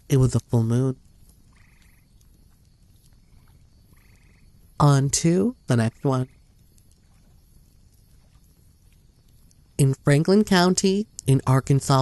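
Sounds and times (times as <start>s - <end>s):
low steady hiss: 0.0s - 12.0s
pulsed trilling animal call: 1.5s - 2.2s, 3.2s - 4.6s.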